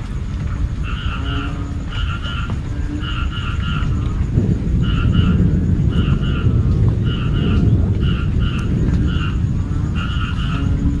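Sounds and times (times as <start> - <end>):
frogs calling in low chorus: 0.0 - 11.0
short higher frog calls in pairs: 0.8 - 4.2, 4.8 - 10.8.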